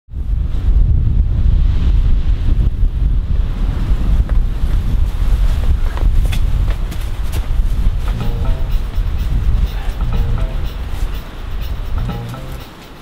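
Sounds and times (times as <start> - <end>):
wind buffeting microphone: 0.1 - 13.0.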